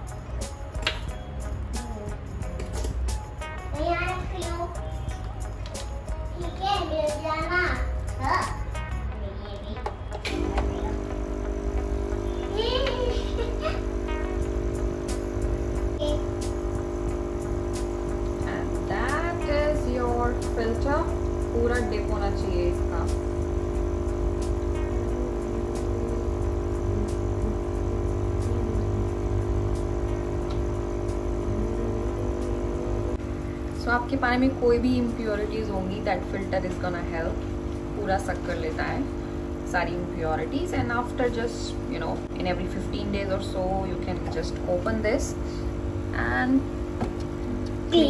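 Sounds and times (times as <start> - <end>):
child's voice: 3.7 - 5.0, 6.2 - 11.1, 12.3 - 14.4, 16.0 - 16.4
air pump electric hum: 10.2 - 48.0.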